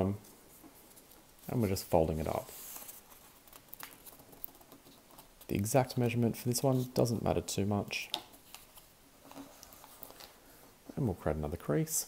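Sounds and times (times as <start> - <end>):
paper rustling as folded: 0.6 - 7.2, 8.3 - 10.4
fingers ticking on paper: 3.1 - 5.5.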